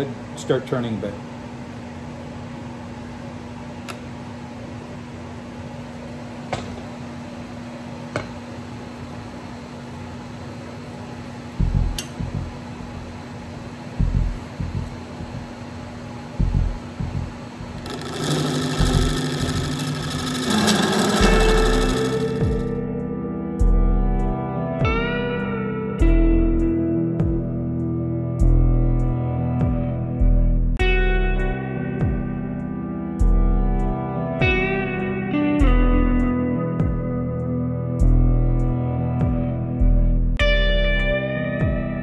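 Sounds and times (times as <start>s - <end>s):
turning tool cutting wood: 17.8s - 22.8s
wood lathe motor hum: 17.8s - 22.8s
guitar music: 19.3s - 23.5s, 40.4s - 42.0s.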